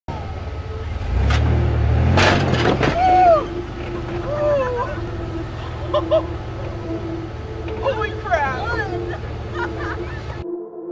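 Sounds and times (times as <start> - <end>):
suv engine revving: 0.1 - 10.4
person calling out: 3.1 - 5.7.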